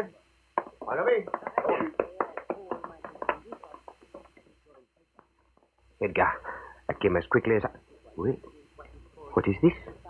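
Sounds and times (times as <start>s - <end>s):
low indistinct voices: 0.0s - 10.0s.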